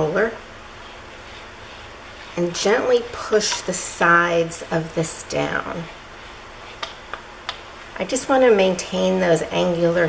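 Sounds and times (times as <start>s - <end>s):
foam roller on clay: 0.0s - 10.0s
steady hiss: 0.0s - 10.0s.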